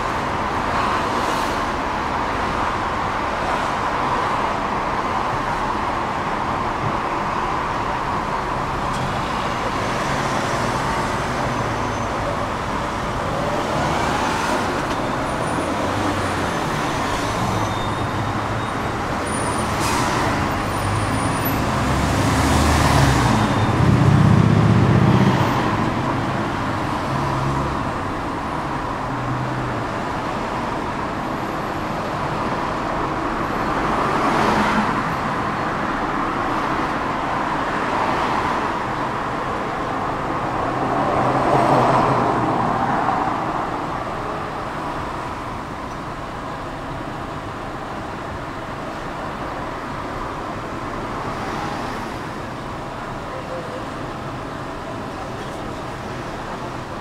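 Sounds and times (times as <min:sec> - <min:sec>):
cars passing: 0:00.0 - 0:57.0.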